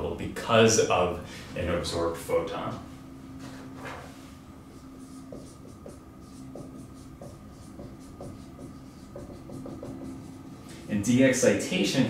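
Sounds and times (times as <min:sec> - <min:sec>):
faint room hum: 0:00.0 - 0:12.0
marker writing on whiteboard: 0:04.7 - 0:10.8.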